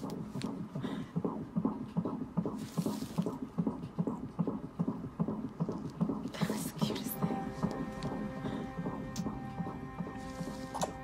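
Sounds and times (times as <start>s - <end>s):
fast whooshing heartbeat pulse: 0.0s - 10.2s
low hum: 3.3s - 11.0s.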